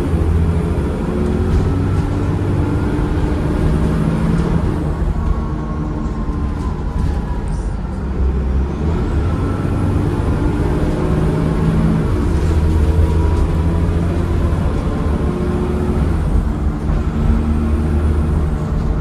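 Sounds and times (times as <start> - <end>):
bus diesel engine running: 0.0 - 19.0.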